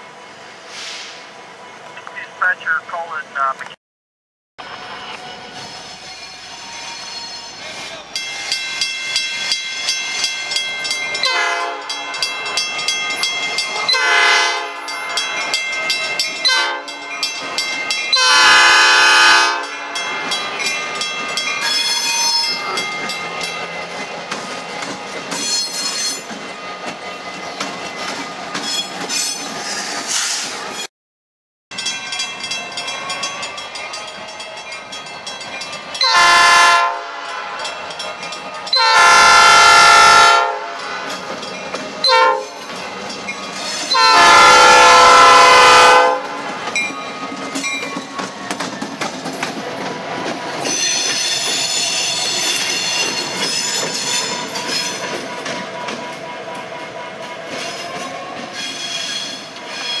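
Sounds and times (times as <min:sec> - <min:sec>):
locomotive air horn: 0:11.2 - 0:12.0, 0:13.9 - 0:14.9, 0:16.5 - 0:17.0, 0:18.2 - 0:20.0, 0:36.0 - 0:37.6, 0:38.7 - 0:41.1, 0:42.1 - 0:42.6, 0:43.9 - 0:46.4
train wheels clacking on rails: 0:20.0 - 0:30.5, 0:40.7 - 0:44.8, 0:45.6 - 1:00.0.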